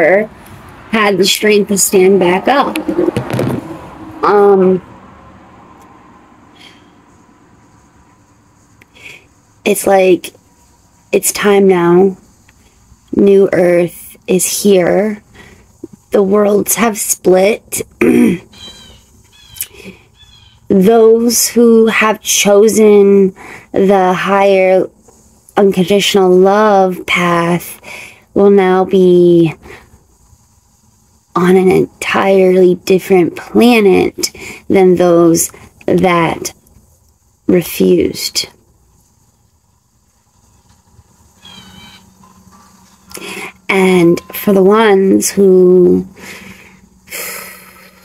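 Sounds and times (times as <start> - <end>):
high-pitched animal call: 18.5 - 20.7, 41.4 - 43.2
faint high chirping: 40.3 - 44.9.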